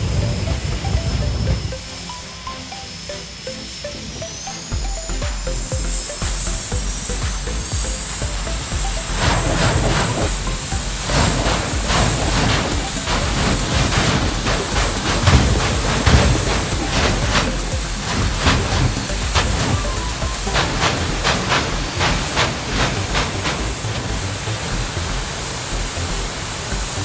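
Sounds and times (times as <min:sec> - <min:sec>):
turbine engine whine: 0:00.0 - 0:27.0.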